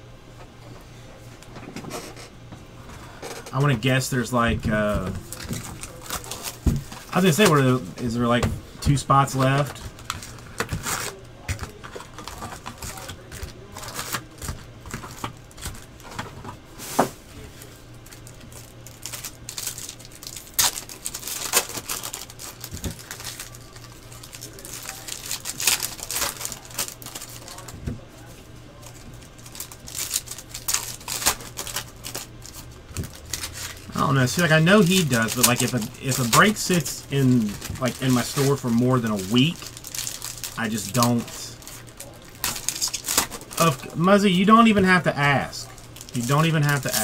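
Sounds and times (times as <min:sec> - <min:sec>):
low electrical hum: 0:00.0 - 0:47.0.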